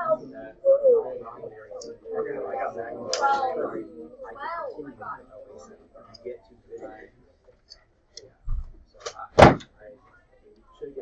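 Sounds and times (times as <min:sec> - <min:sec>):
quiet spoken words: 0:00.0 - 0:11.0
loud thump: 0:09.4 - 0:09.7.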